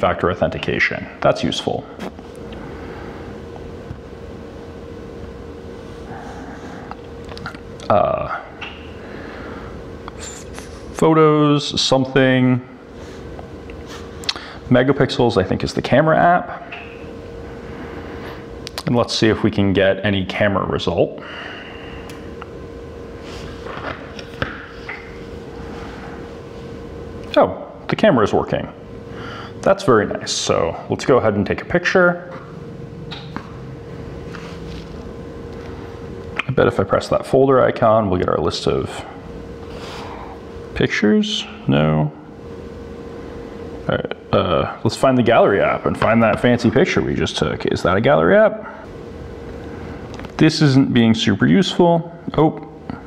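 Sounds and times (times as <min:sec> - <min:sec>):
faint hum: 0:00.0 - 0:53.0.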